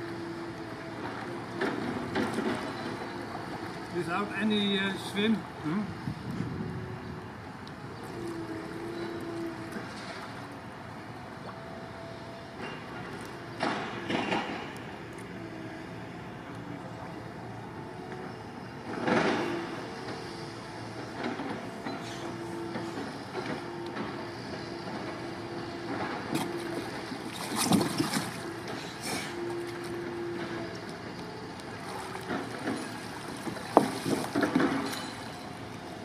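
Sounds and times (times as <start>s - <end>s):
water splashing and sloshing: 0.0s - 36.0s.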